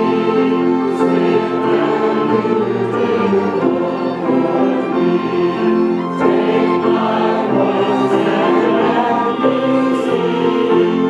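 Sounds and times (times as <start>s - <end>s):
string ensemble playing chords: 0.0s - 11.0s.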